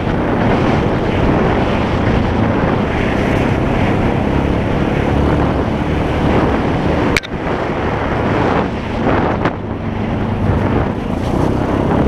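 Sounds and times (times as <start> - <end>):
atv engine running: 0.0 - 12.0
wind noise on microphone: 0.0 - 12.0.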